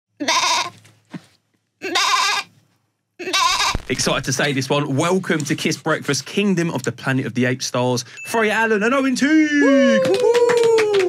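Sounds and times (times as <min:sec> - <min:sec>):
bleat-like vocal calls: 0:00.2 - 0:00.7, 0:01.8 - 0:02.5, 0:03.2 - 0:03.8.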